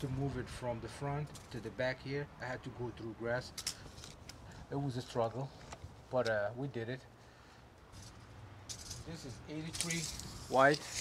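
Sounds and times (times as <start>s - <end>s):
tape measure clicks and rattles: 8.0s - 11.0s.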